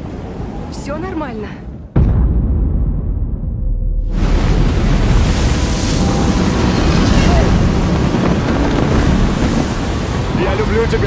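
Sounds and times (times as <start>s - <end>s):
heavy ocean waves: 0.0s - 1.9s, 4.0s - 11.0s
strong wind: 0.0s - 11.0s.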